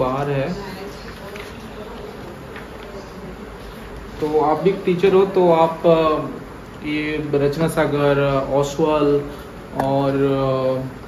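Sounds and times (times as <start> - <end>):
paper sheets rustling: 0.7 - 4.4.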